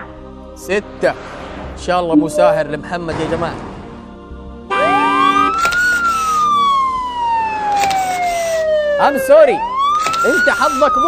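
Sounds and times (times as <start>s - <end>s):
siren wail sound effect: 4.7s - 11.0s.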